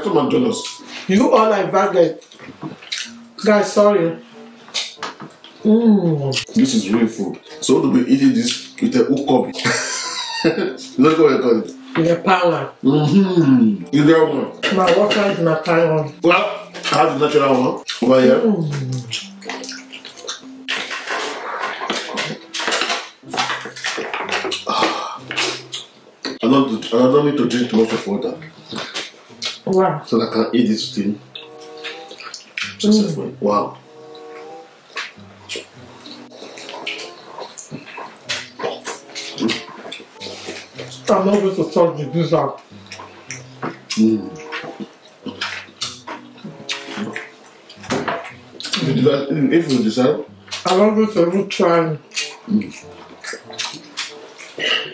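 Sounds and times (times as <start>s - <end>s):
wet chewing and lip-smacking: 2.2s - 3.4s, 17.8s - 26.9s, 27.8s - 29.8s, 31.2s - 33.0s, 33.8s - 41.1s, 42.6s - 48.9s, 50.3s - 50.8s, 52.1s - 54.9s
person humming mm: 18.4s - 19.2s.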